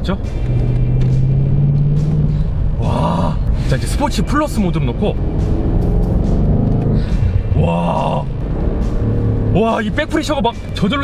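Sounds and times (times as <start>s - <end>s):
car engine accelerating: 0.0s - 11.0s
road rumble: 0.0s - 11.0s.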